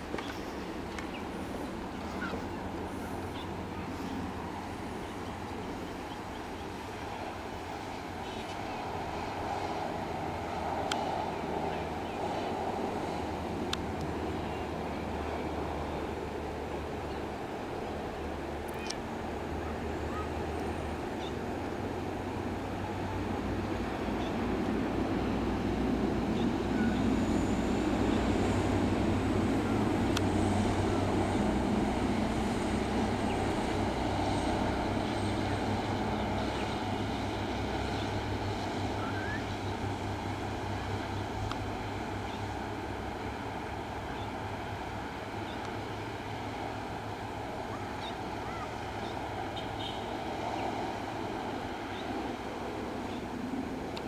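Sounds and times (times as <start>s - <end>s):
bus engine drone: 0.0s - 54.0s.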